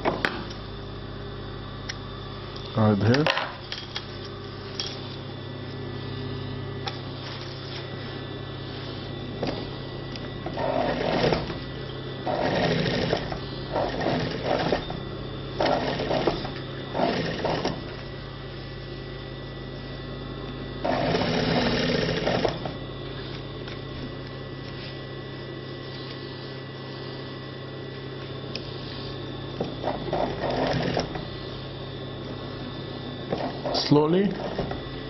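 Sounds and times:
steady low hum: 0.0 - 35.0
sewing machine stitching: 10.6 - 11.6, 12.2 - 14.9, 15.6 - 17.8, 20.8 - 22.6, 29.8 - 31.2.

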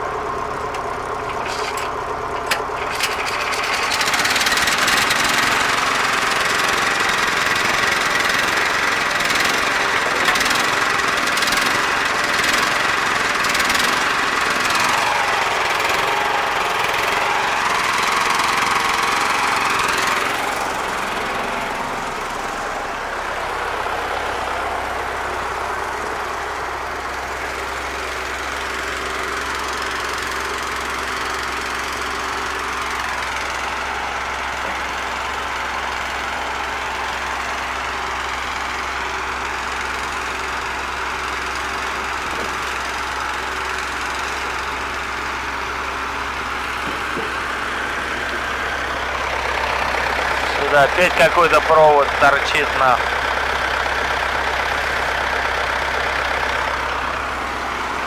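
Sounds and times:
diesel engine running: 0.0 - 58.0.

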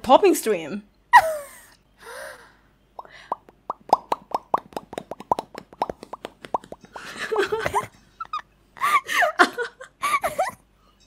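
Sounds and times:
mouth pops with lips: 3.0 - 7.0.

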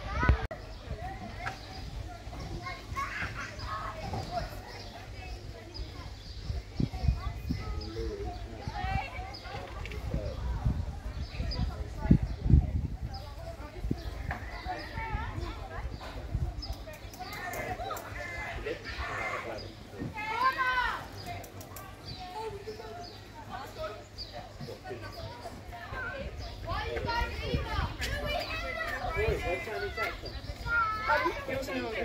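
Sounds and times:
children calling out and chattering: 0.0 - 32.0.

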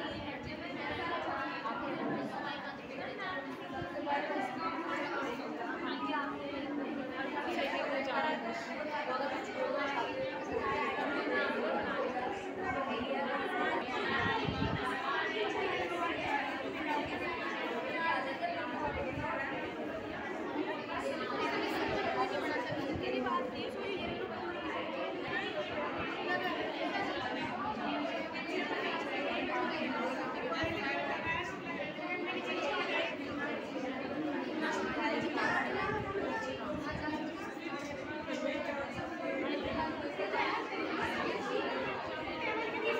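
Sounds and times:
chatter of many people: 0.0 - 42.9.

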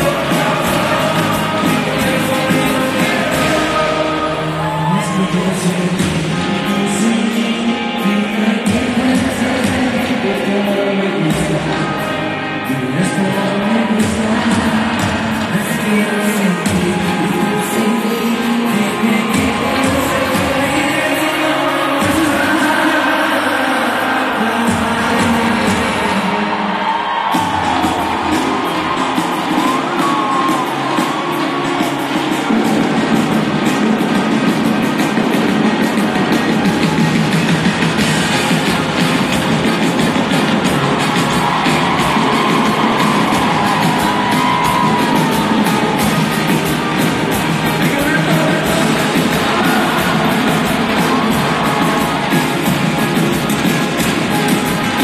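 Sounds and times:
person singing: 0.0 - 34.4, 38.2 - 55.0
crowd noise: 0.0 - 55.0
live pop band music: 0.0 - 55.0.

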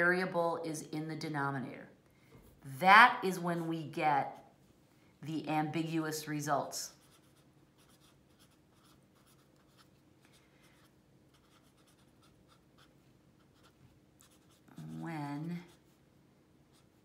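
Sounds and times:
pen scratching on paper: 6.9 - 10.0, 10.7 - 16.0.

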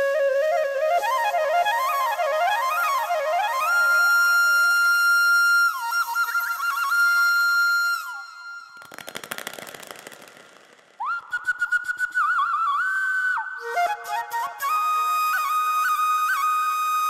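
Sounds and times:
flute melody: 0.0 - 8.8, 11.0 - 17.0
rapid rattling noise: 8.8 - 11.0.

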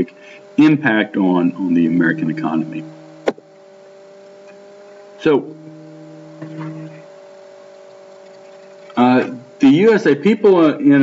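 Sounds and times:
person's drawn-out hesitation: 0.0 - 3.2
electrical hum with fixed tones: 0.0 - 11.0.

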